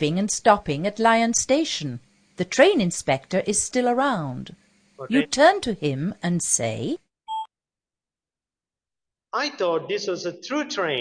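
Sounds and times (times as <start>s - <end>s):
short electronic beep: 7.3s - 7.5s.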